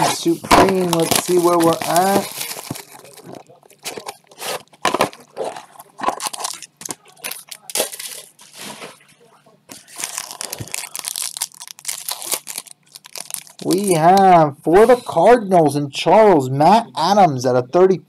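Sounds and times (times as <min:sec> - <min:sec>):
foil wrapper crinkling: 0:00.0 - 0:09.0, 0:09.7 - 0:14.1.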